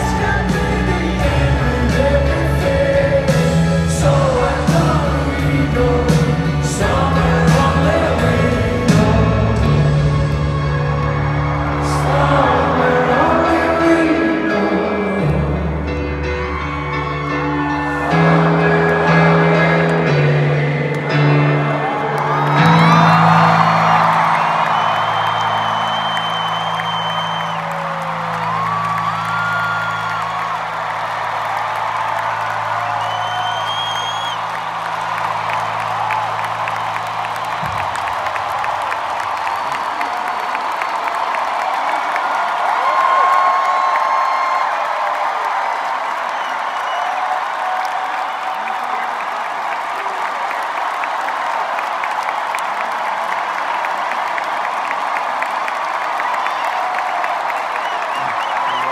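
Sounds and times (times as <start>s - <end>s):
crowd cheering and whistling: 0.0s - 58.9s.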